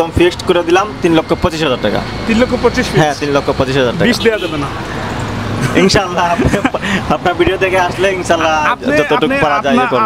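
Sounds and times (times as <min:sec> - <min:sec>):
vehicle engine humming: 0:00.0 - 0:10.0
man's voice: 0:05.6 - 0:10.0.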